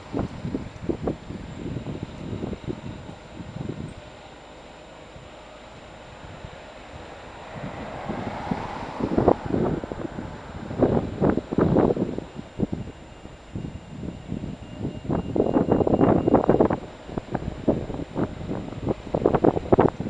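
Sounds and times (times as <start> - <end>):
street traffic noise: 0.0 - 20.0
wind buffeting microphone: 0.0 - 20.0.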